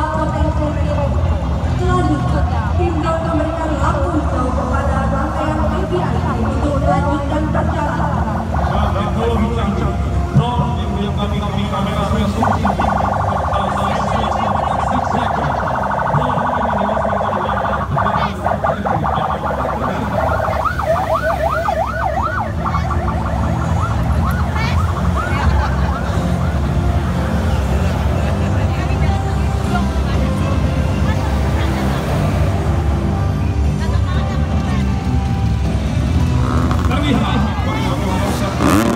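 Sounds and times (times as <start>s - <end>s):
vehicle engines rumbling: 0.0s - 38.9s
siren yelp: 5.2s - 10.0s, 12.0s - 27.5s
electronic siren tone: 5.3s - 10.0s, 12.0s - 27.4s.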